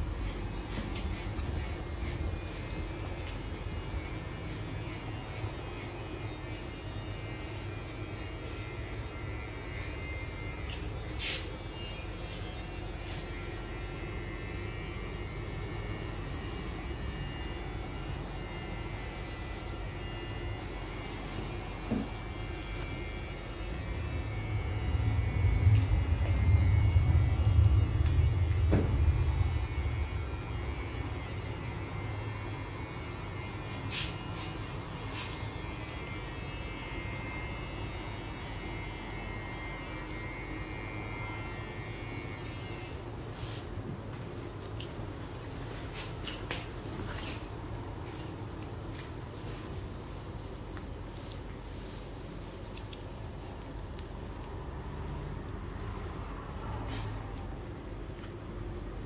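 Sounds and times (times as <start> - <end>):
steady low rumble: 22.2 - 32.9.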